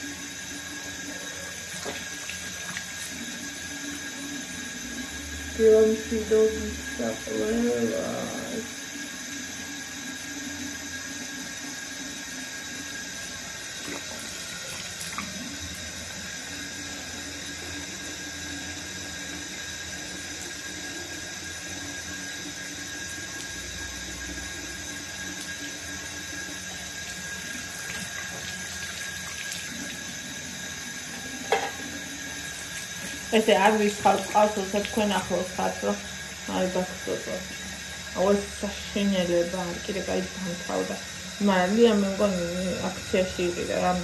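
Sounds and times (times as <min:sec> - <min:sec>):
tap water running into sink: 0:00.0 - 0:44.0.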